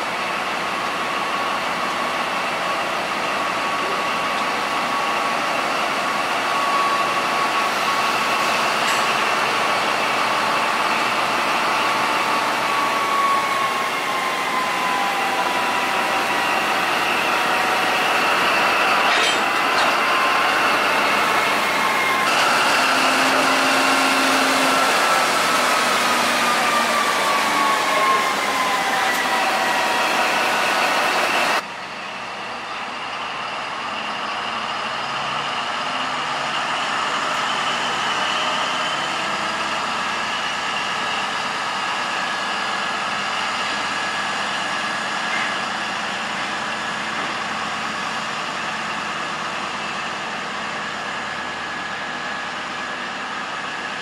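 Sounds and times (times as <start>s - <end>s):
diesel locomotive engine whining: 0.0s - 54.0s.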